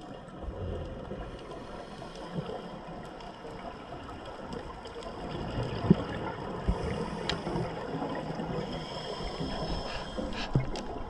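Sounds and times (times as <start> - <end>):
underwater regulator bubbles: 4.3 - 11.0.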